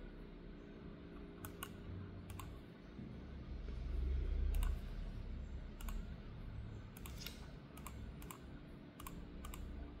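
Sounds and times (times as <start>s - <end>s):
computer keyboard click: 9.0s - 9.7s.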